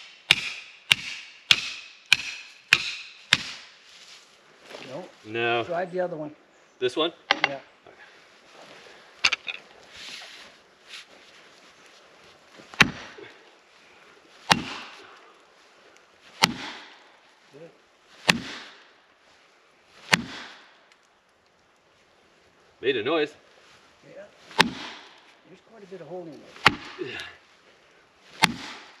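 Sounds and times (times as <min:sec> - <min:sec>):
axe striking metal wedge: 0:00.1 - 0:03.6, 0:14.5 - 0:14.9, 0:16.4 - 0:16.9, 0:18.3 - 0:18.8, 0:24.6 - 0:25.1, 0:26.6 - 0:27.0, 0:28.4 - 0:29.0.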